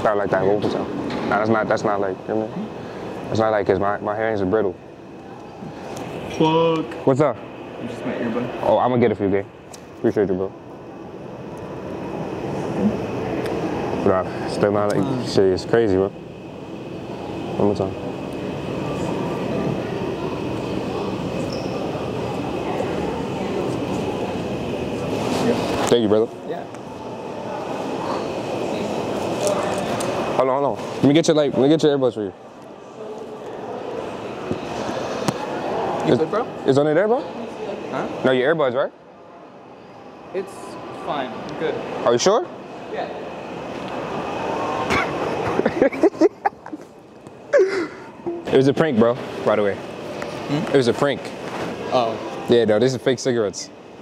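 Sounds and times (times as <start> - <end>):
indoor background hum and hiss: 0.0 - 54.0.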